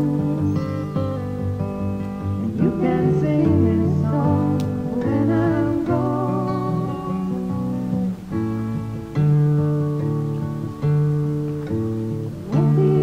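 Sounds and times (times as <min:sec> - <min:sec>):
acoustic guitar chords: 0:00.0 - 0:13.0.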